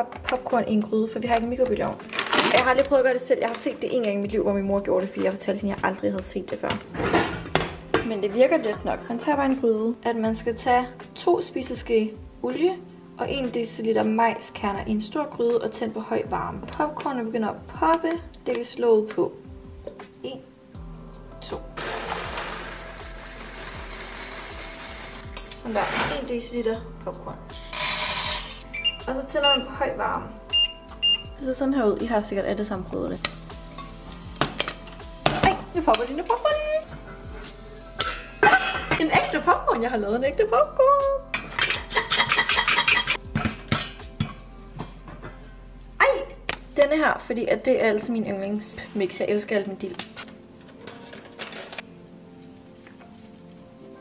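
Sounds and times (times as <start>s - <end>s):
background music with steady beat: 0.0s - 54.0s
foil sachet rustling: 2.0s - 3.7s.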